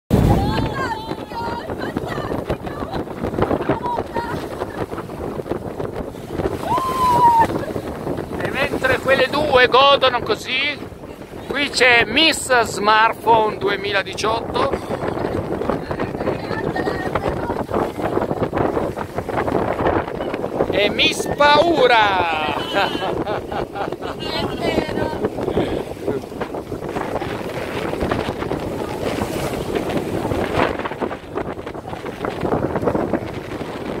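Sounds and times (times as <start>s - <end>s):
water rushing along hull: 0.1s - 34.0s
wind buffeting microphone: 0.1s - 34.0s.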